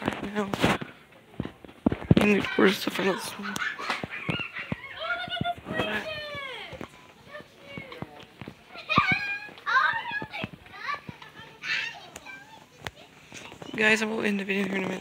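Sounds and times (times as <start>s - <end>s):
children talking and calling out: 2.1s - 15.0s.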